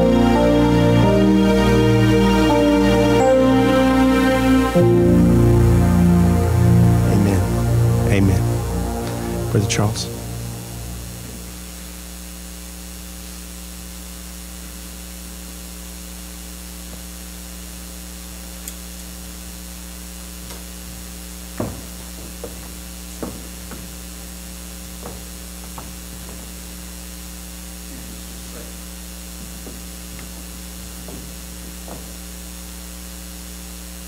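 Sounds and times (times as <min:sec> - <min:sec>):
soft keyboard chord: 0:00.0 - 0:11.8
steady hum and hiss: 0:00.0 - 0:34.0.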